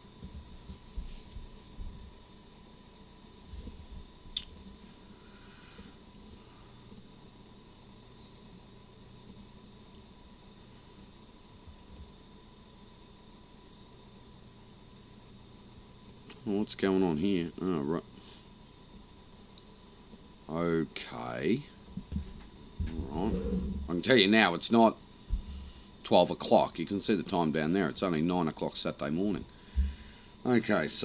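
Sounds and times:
faint steady hum: 0:00.0 - 0:31.0
thin high whine: 0:20.5 - 0:31.0.

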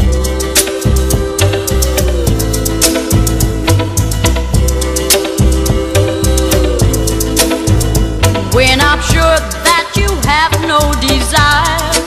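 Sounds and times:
band playing soul-pop: 0:00.0 - 0:12.0.

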